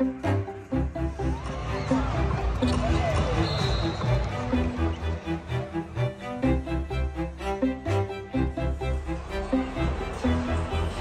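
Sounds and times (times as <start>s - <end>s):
arena music with pulsing bass: 0.0s - 3.4s, 4.0s - 11.0s
crowd voices: 0.0s - 11.0s.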